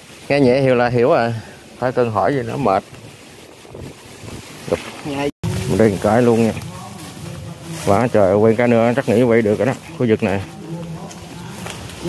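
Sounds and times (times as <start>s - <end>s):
rustling of leafy ground cover: 0.0s - 12.0s
wind buffeting microphone: 0.0s - 12.0s.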